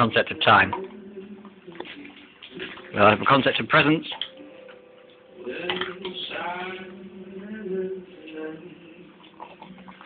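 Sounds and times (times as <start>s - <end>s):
person speaking: 2.8s - 4.3s.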